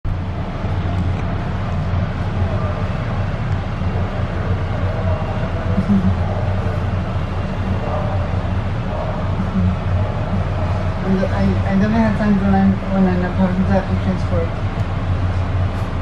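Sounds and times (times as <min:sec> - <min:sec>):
train tyres rumbling: 0:00.1 - 0:16.0.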